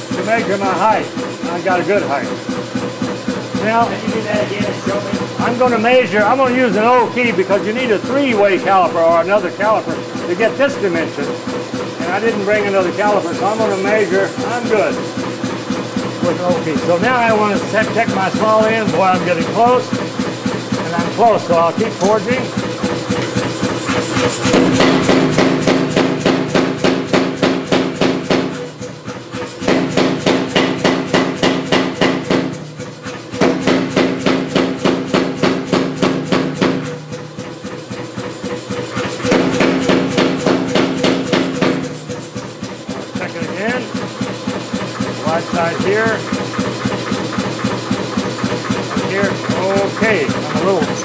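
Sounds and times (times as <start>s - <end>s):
motor humming: 0.0s - 51.0s
power hammer pounding steel: 0.0s - 51.0s.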